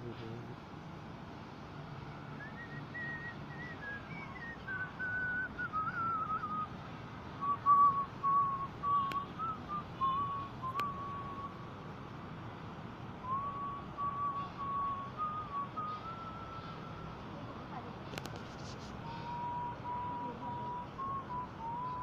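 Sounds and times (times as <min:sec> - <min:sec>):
whistled melody: 0:02.4 - 0:06.8, 0:07.4 - 0:11.6, 0:13.2 - 0:17.2, 0:19.0 - 0:22.0.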